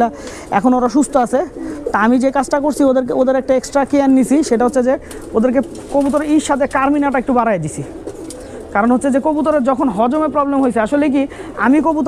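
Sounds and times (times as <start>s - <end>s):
man talking: 0.0s - 8.0s, 8.7s - 12.0s
pigeons cooing: 0.0s - 12.0s.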